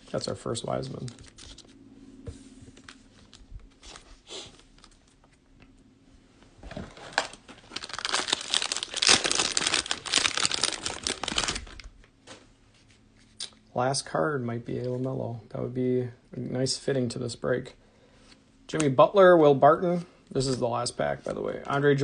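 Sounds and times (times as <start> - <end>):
cellophane wrapper tearing and crinkling: 6.9 - 12.0.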